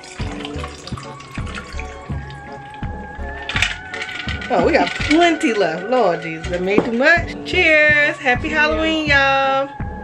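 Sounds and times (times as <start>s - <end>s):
drink pouring into glass: 0.0s - 5.9s
background music with steady beat: 0.0s - 10.0s.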